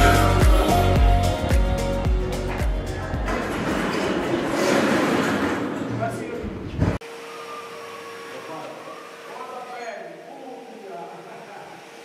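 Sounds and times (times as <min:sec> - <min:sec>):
work noise: 0:02.2 - 0:12.0.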